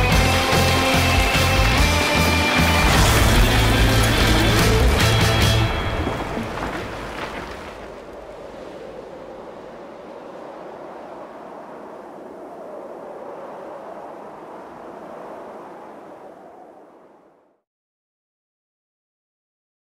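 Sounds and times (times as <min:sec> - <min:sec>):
wind-like rushing noise: 0:02.5 - 0:17.6.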